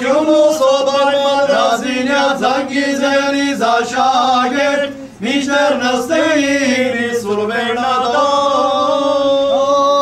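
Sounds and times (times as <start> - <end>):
men chanting a hymn: 0.0 - 10.0.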